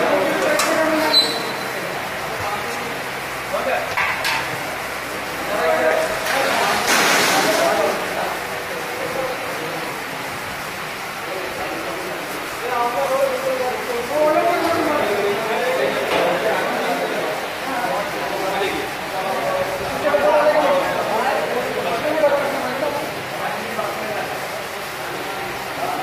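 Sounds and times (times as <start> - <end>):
steady background noise: 0.0 - 26.0.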